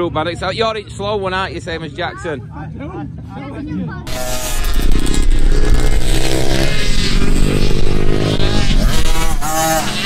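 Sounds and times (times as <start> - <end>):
motocross bike engine revving: 4.1 - 10.0.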